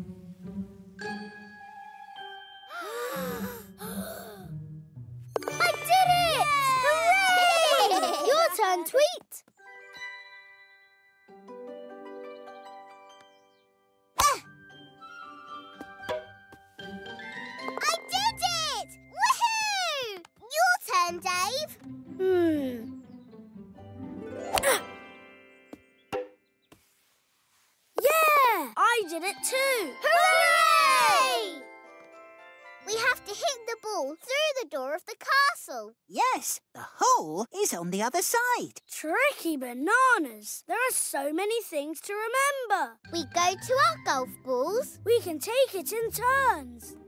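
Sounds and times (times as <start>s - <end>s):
children's background music: 0.0s - 26.4s, 28.0s - 36.0s, 38.2s - 47.0s
cartoon voices whooping and squealing: 6.0s - 8.6s, 19.2s - 20.1s, 30.0s - 31.6s
soft hiss: 26.8s - 28.0s.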